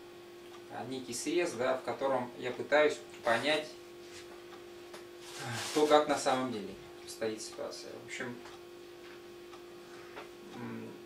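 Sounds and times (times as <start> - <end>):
steady electrical hum: 0.0 - 11.0
faint tick: 0.4 - 0.7, 9.5 - 10.7
low vocal hesitation sound: 10.5 - 11.0.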